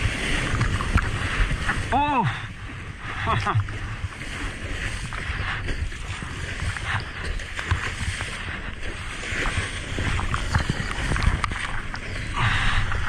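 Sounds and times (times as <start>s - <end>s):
ocean surf sloshing: 0.0s - 13.0s
wind on microphone: 0.0s - 13.0s.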